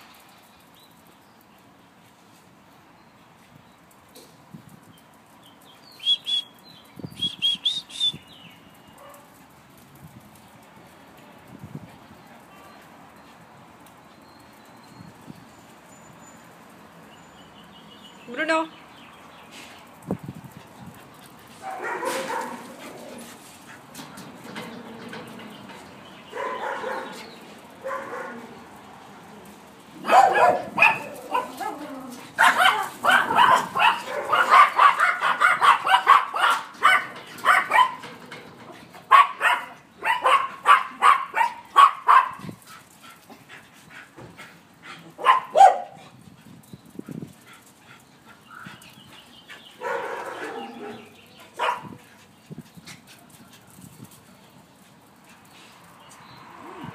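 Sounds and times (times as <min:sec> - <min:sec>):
small dogs barking: 0:21.6 - 0:23.2, 0:26.3 - 0:28.6, 0:30.0 - 0:38.1, 0:39.0 - 0:42.6, 0:45.2 - 0:46.0, 0:49.8 - 0:52.0.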